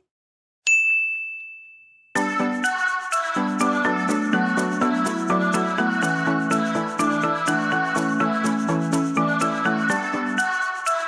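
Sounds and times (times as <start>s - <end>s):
high bell-like ding: 0.7s - 2.2s.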